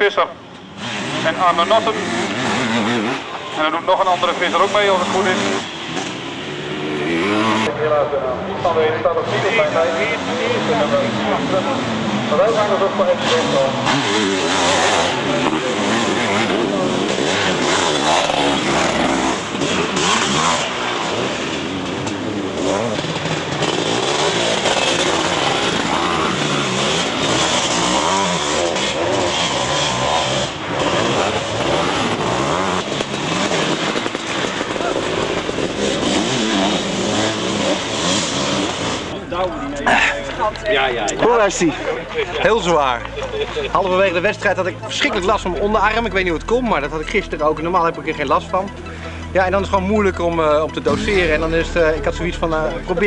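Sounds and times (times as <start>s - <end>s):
motorcycle engines racing past: 0.0s - 53.0s.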